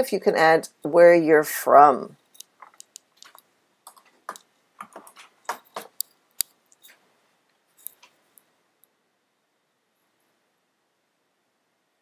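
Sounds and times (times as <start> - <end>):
computer mouse clicks: 2.4 - 7.0.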